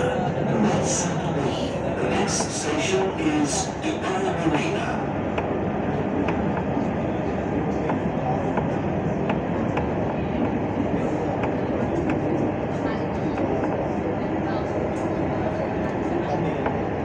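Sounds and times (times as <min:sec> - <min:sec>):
tram rumbling from inside: 0:00.0 - 0:17.0.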